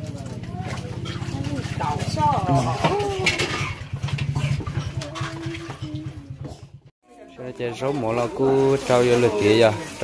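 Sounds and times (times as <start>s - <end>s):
small engine running: 0.0s - 6.9s.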